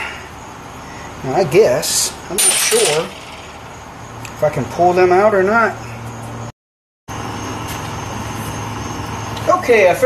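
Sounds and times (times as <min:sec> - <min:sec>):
steady background hum: 0:00.0 - 0:06.5.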